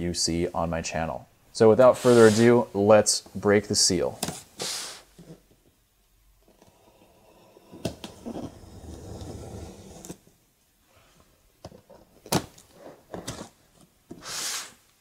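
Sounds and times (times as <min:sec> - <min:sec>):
tape ripping hiss: 0:01.8 - 0:02.7, 0:04.5 - 0:05.2, 0:14.2 - 0:15.0
scraping along tape seam: 0:01.9 - 0:02.7.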